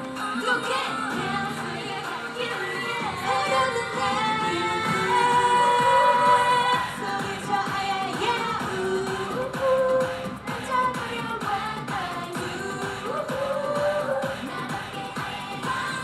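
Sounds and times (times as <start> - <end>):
pop backing track: 0.0 - 16.0
women singing pop song: 0.0 - 16.0.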